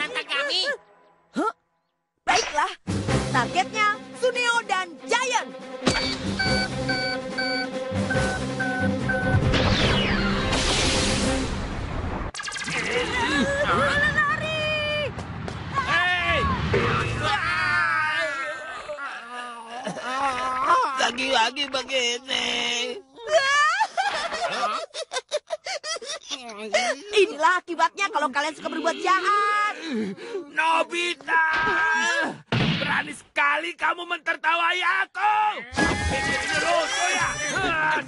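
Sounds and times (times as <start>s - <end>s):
background music: 0.0s - 12.0s, 35.8s - 38.0s
short electronic beeps: 5.9s - 9.4s
person crying out: 17.8s - 21.1s, 35.6s - 38.0s.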